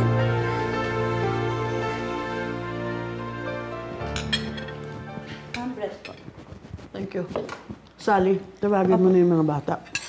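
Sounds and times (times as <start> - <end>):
cutlery clinking on plates: 4.1 - 4.9.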